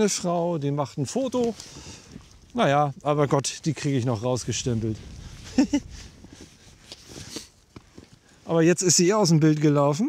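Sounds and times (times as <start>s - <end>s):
soft taps and rustles: 6.2s - 8.2s.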